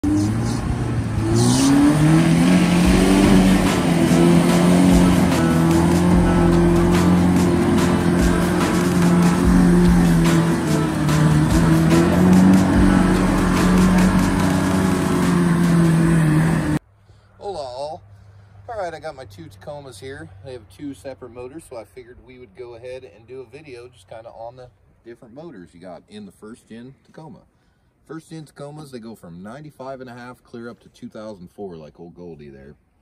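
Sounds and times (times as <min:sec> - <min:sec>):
tires spinning through mud: 0:00.0 - 0:16.8
truck engine revving high: 0:00.0 - 0:16.8.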